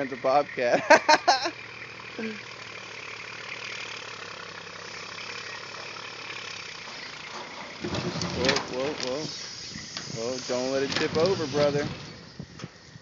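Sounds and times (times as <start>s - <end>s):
tractor engine running: 0.0s - 13.0s
person laughing: 0.7s - 1.6s.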